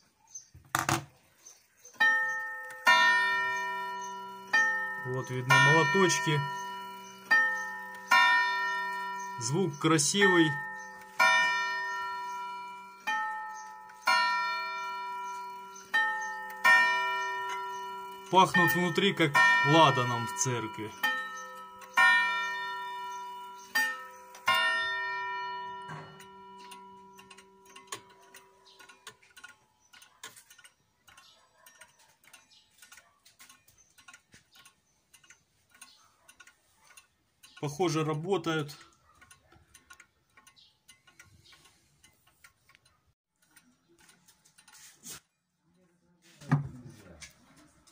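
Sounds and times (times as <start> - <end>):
wall clock striking: 2.0 - 29.5.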